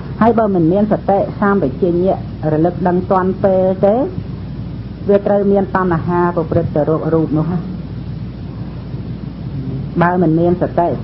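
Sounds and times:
recording hiss and low rumble: 0.0s - 11.0s
faint voice: 9.5s - 10.0s.

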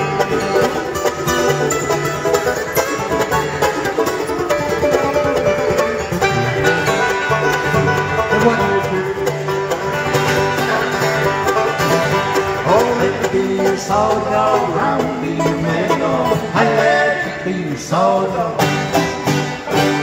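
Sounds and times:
acoustic guitar: 0.0s - 20.0s
banjo: 0.0s - 20.0s
mandolin: 0.0s - 20.0s.

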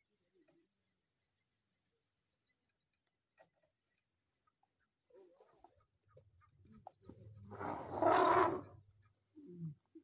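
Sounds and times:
elephant trumpeting: 7.5s - 8.7s.

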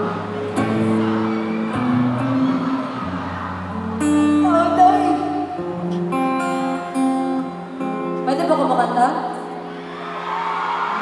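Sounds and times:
strummed guitar chords: 0.0s - 9.8s.

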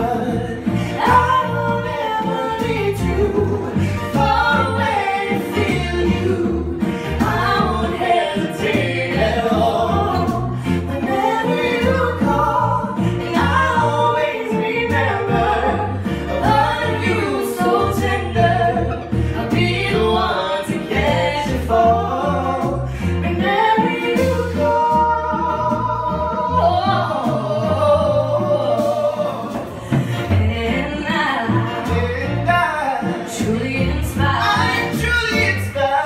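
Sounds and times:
band accompaniment: 0.0s - 36.0s
woman singing: 0.0s - 36.0s.

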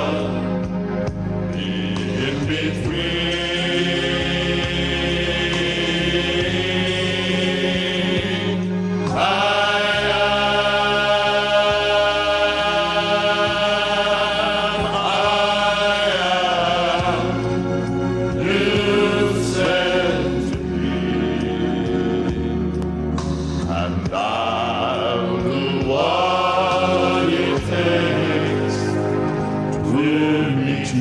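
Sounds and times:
male choir singing in harmony: 0.0s - 31.0s.

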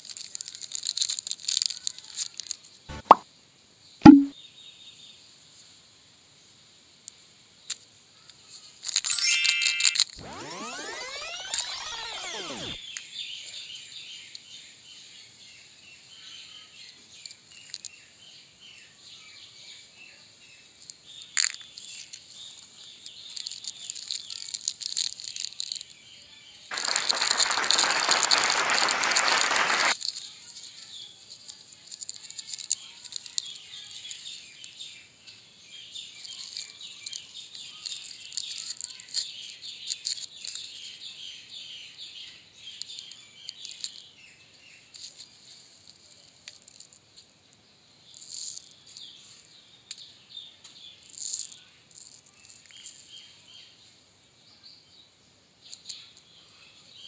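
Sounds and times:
foil packet crinkling: 0.0s - 2.7s, 23.3s - 25.9s, 26.7s - 30.3s, 31.5s - 34.3s
plastic wrappers crinkling: 0.0s - 2.7s, 23.2s - 26.0s, 26.7s - 30.7s, 31.3s - 34.5s, 36.2s - 40.9s
pitched sliding sound: 9.1s - 12.8s.

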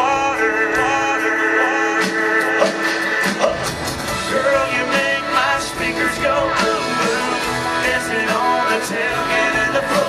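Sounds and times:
country band playing: 0.0s - 10.0s
electric guitars: 0.0s - 10.0s
drum hits: 2.0s - 10.0s.

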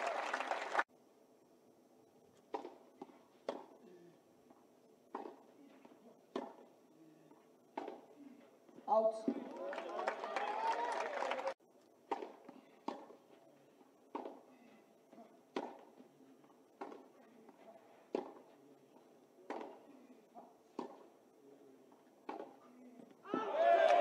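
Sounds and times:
tennis racket hitting ball: 2.5s - 3.8s, 5.1s - 6.7s, 7.7s - 8.1s, 12.0s - 13.3s, 14.1s - 16.1s, 16.7s - 18.6s, 19.4s - 21.2s, 22.2s - 22.6s.

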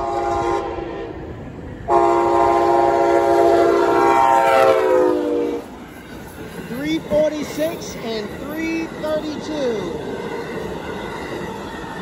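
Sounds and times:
locomotive air horn blasts: 0.0s - 1.1s, 1.9s - 5.6s
train rumbling past: 0.0s - 12.0s.

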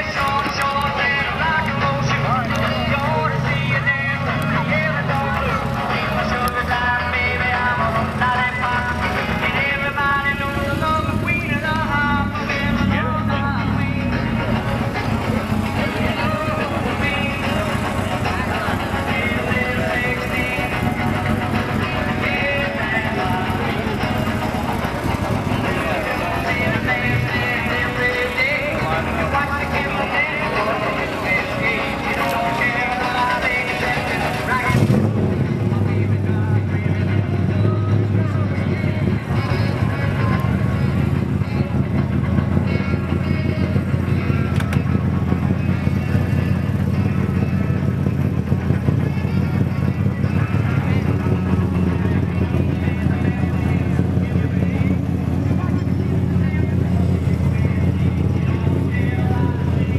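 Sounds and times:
music: 0.0s - 59.9s
people's voices: 0.0s - 59.9s
vehicle engine rumbling: 0.0s - 59.9s.

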